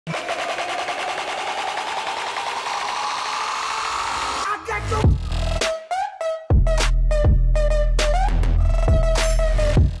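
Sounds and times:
pulsing synth riser: 0:00.1 - 0:05.7.

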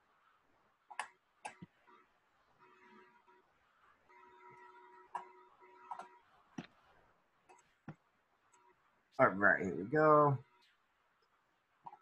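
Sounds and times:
faint electronic hum: 0:00.0 - 0:12.0.

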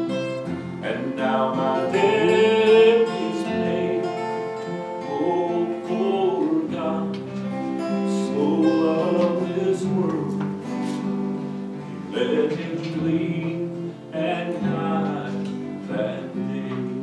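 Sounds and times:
acoustic guitar strumming: 0:00.0 - 0:17.0
man singing: 0:00.8 - 0:11.1, 0:12.0 - 0:17.0.

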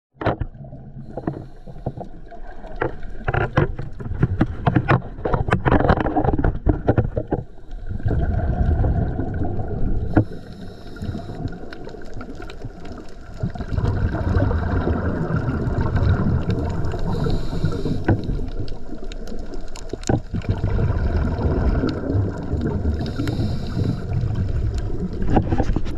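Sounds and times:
low rumble of moving water: 0:00.1 - 0:25.9
sharp crackling clicks underwater: 0:00.2 - 0:25.9.

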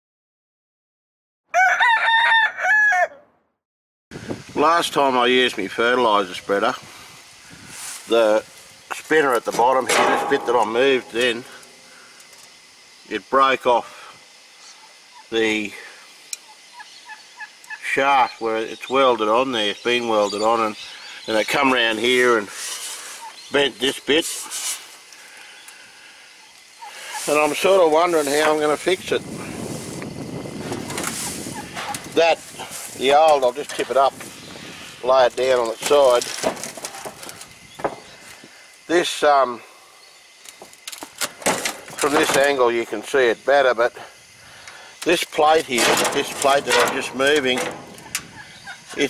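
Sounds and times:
rooster crowing: 0:01.5 - 0:03.3
faint outdoor background hiss: 0:04.1 - 0:49.0.

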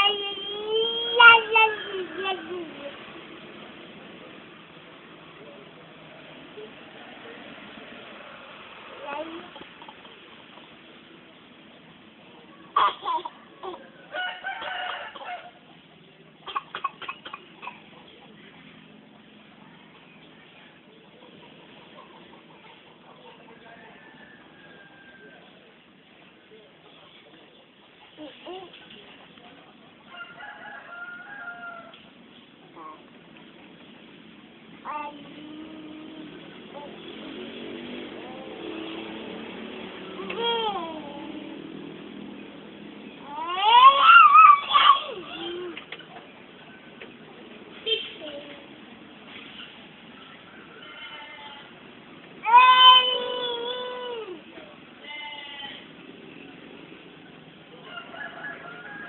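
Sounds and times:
rooster crowing: 0:13.4 - 0:15.6, 0:23.6 - 0:25.5, 0:30.1 - 0:32.0, 0:57.8 - 0:59.0
child crying out: 0:43.3 - 0:45.8.

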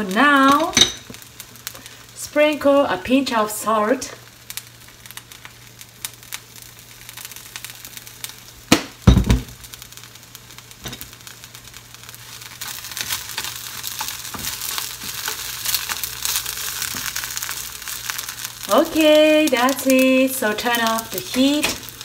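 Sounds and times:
onions sizzling in oil: 0:00.0 - 0:22.0
loud thump: 0:09.1 - 0:09.6.

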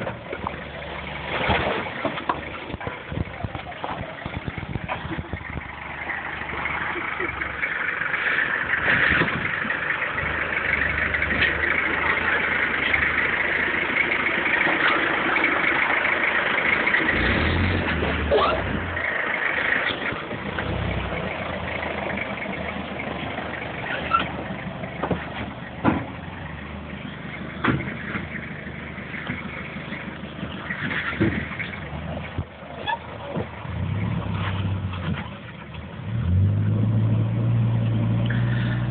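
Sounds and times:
truck engine running: 0:00.0 - 0:38.9.

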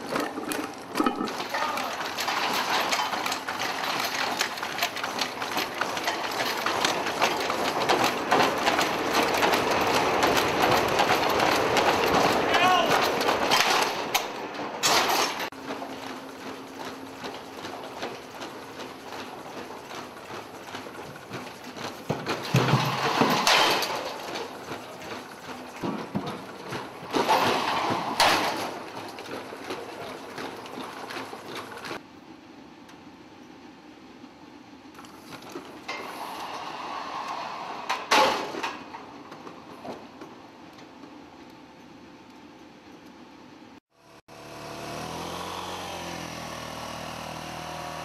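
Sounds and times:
loud clatters: 0:00.0 - 0:32.0.

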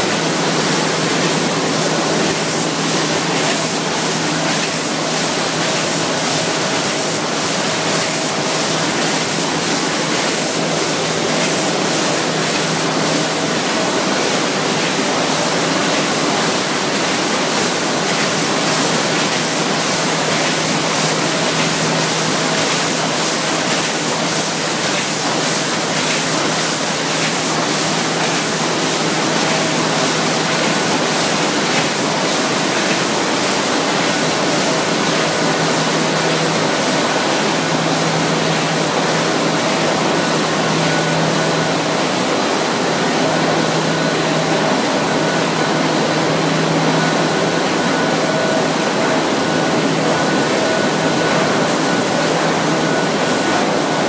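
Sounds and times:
printing press running: 0:00.0 - 0:54.0.

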